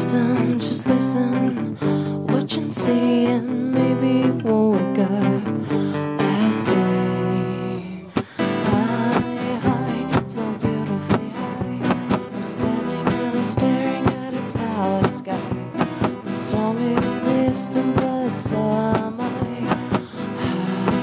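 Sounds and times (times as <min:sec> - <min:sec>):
acoustic guitars strumming: 0:00.0 - 0:21.0
person singing: 0:00.0 - 0:21.0.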